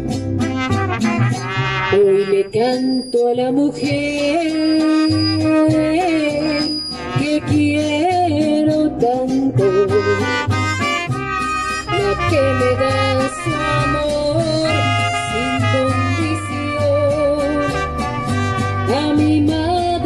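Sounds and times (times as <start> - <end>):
strummed guitar rhythm: 0.0 - 2.4, 5.9 - 20.0
pulsing bass guitar: 0.0 - 20.0
trumpets playing melody: 0.4 - 2.9, 3.9 - 8.2, 9.6 - 19.5.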